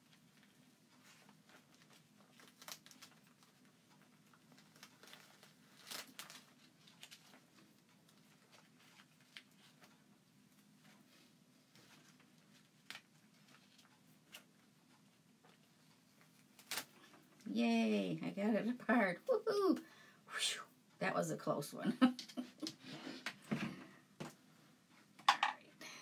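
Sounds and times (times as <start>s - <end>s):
plastic stencil crinkling and peeling: 0.0s - 17.6s
low room hum: 0.0s - 26.0s
small plastic crackles: 0.1s - 10.0s, 11.7s - 14.6s, 15.4s - 17.6s.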